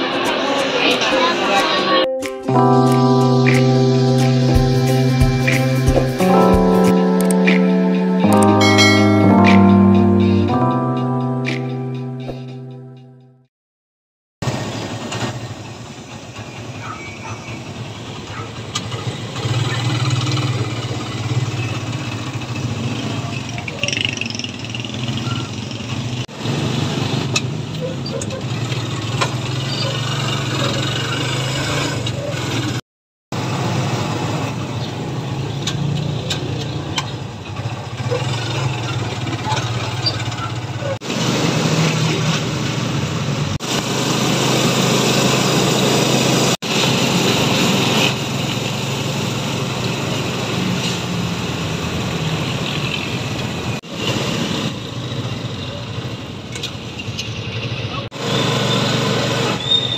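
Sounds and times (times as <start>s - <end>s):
road and traffic noise: 0.0s - 2.0s, 14.4s - 59.9s.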